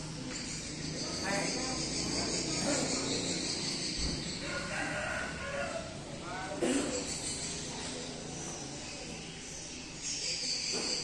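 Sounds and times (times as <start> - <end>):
rooster crowing: 4.4 - 6.0.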